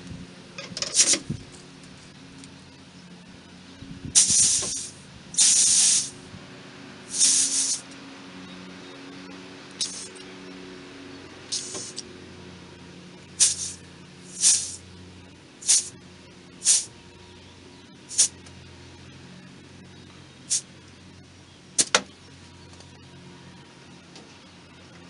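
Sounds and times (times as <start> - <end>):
air chuck hissing: 0.6 - 1.4, 4.1 - 6.3, 7.1 - 7.9, 9.8 - 10.2, 11.5 - 12.0, 13.4 - 14.8, 15.6 - 16.0, 16.6 - 16.9, 18.1 - 18.4, 20.5 - 20.7.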